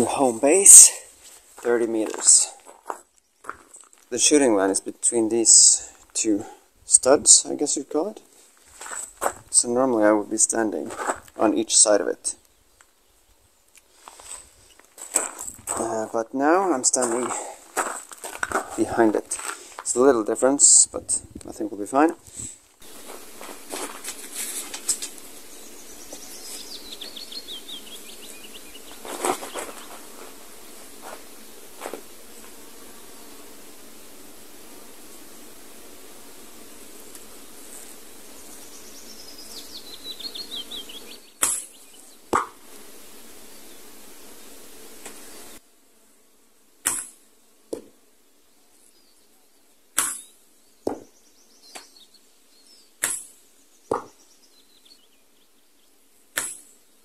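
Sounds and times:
faint steady hiss: 0.0s - 57.0s
songbird trilling: 25.6s - 30.0s, 38.7s - 42.1s
arrow knocking into target: 41.4s - 41.7s, 42.3s - 42.6s, 46.8s - 47.9s, 50.0s - 51.1s, 53.0s - 53.3s, 53.9s - 54.1s, 56.4s - 56.6s.

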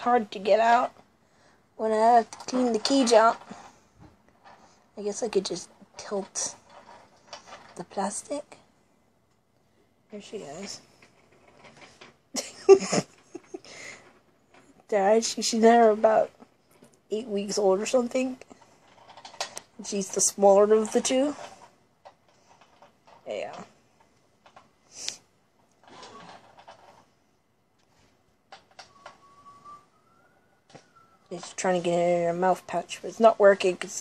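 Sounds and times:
person's voice: 0.0s - 1.0s, 1.8s - 3.6s, 5.0s - 6.6s, 7.6s - 8.6s, 10.1s - 10.9s, 14.8s - 16.4s, 17.1s - 18.5s, 19.8s - 21.5s, 23.2s - 23.7s, 31.3s - 34.0s
faint rustles: 1.3s - 8.8s.

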